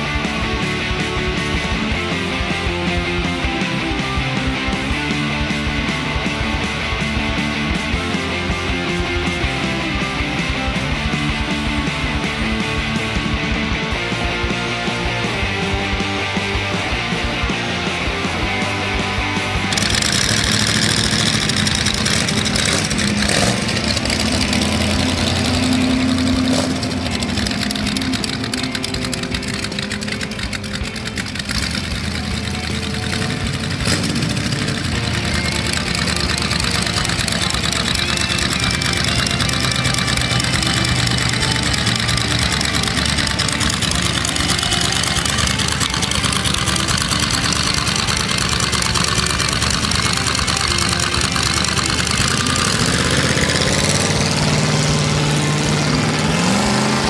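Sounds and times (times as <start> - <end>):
car accelerating: 0.0 - 57.0
car engine idling: 0.0 - 57.0.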